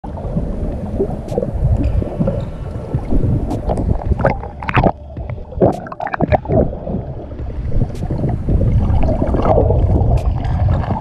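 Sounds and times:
muffled underwater sloshing: 0.0 - 11.0.

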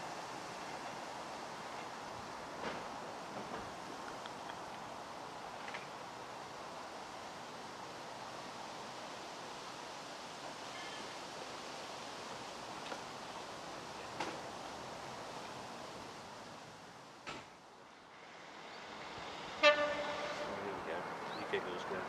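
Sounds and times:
outdoor noise: 0.0 - 22.0
diesel train drawing away: 17.8 - 22.0
train horn: 19.6 - 20.8.

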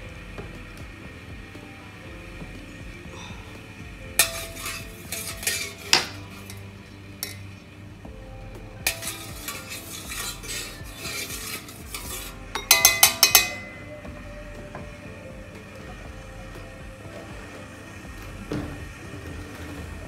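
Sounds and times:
utensil scraping metal pot: 4.2 - 7.6, 8.9 - 14.0
sharp metallic taps on pot: 11.4 - 13.7.

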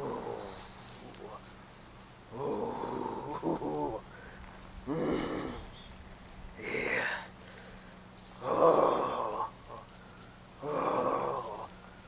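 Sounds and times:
man groaning: 0.0 - 0.5, 2.3 - 4.0, 4.9 - 5.7, 6.6 - 7.3, 8.4 - 9.8, 10.6 - 11.7
man breathing heavily: 4.0 - 5.7, 6.6 - 12.0.

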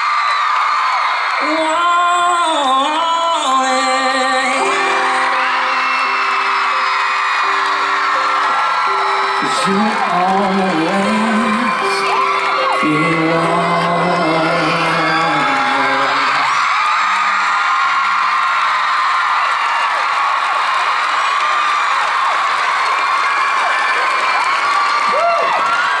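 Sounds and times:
concert crowd cheering and screaming: 0.0 - 26.0.

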